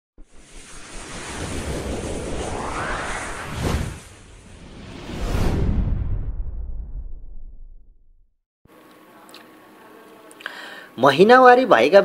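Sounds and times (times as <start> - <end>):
rising whoosh with low rumble: 0.2 - 8.4.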